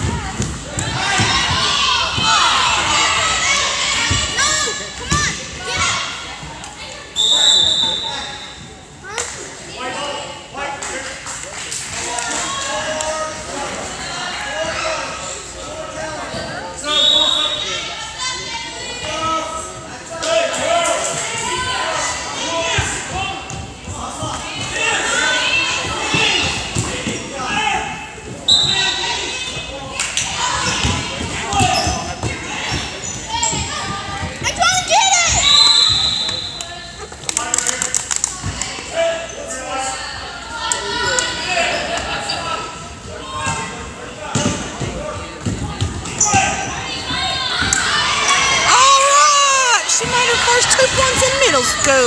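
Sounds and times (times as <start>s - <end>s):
crowd shouting and cheering: 0.0s - 9.2s, 16.8s - 37.2s, 45.5s - 52.0s
voices in a gym: 0.0s - 52.0s
referee's whistle: 7.2s - 8.6s, 16.8s - 17.8s, 28.5s - 29.0s, 35.3s - 36.7s.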